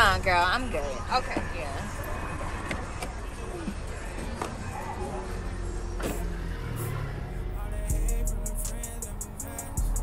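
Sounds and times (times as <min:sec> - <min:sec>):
low vehicle rumble: 0:03.2 - 0:10.0.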